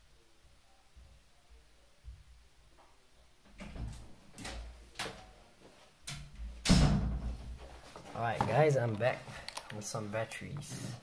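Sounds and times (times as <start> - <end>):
knocks and scuffs of handling: 7.6 - 9.1.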